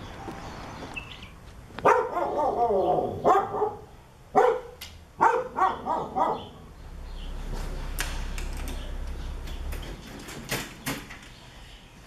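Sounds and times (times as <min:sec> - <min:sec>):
dog barking: 0:01.8 - 0:06.6.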